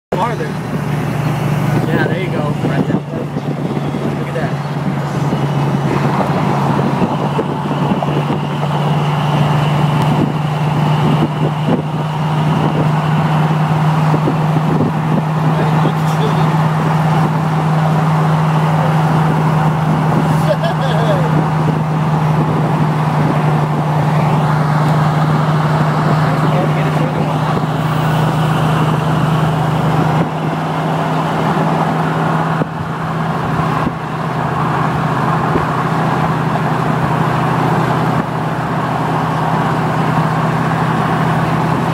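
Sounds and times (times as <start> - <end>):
car engine drone: 0.1 - 41.9
road and wind noise: 0.1 - 41.9.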